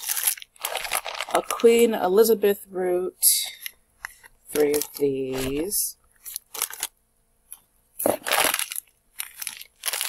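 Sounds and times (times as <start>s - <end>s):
plastic bags crinkling: 0.0s - 2.0s, 4.5s - 7.0s, 8.0s - 10.0s.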